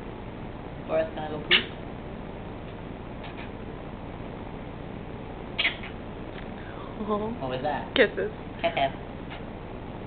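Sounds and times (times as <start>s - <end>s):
steady background hiss: 0.0s - 10.0s
parrot squawk: 1.5s - 1.8s, 5.6s - 6.0s.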